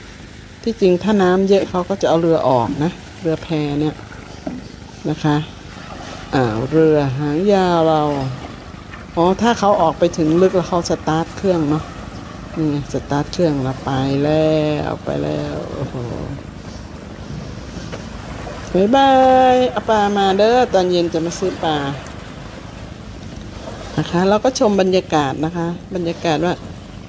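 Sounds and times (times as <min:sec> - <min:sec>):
choppy water: 0:00.0 - 0:27.0
low steady background rumble: 0:00.0 - 0:27.0
woman speaking: 0:00.6 - 0:04.0, 0:05.0 - 0:08.5, 0:09.1 - 0:16.6, 0:18.6 - 0:22.1, 0:24.0 - 0:26.6.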